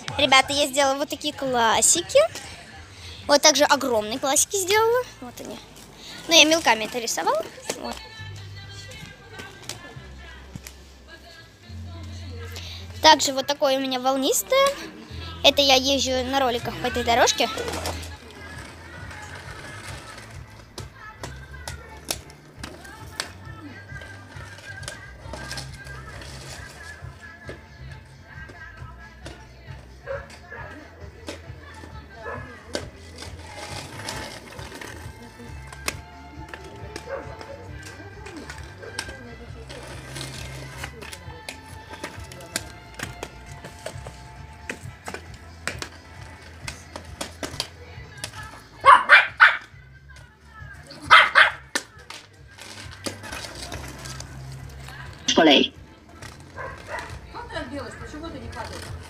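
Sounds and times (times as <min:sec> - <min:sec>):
background music: 0:00.0 - 0:59.0
small dog barking: 0:48.8 - 0:49.6, 0:51.1 - 0:51.6.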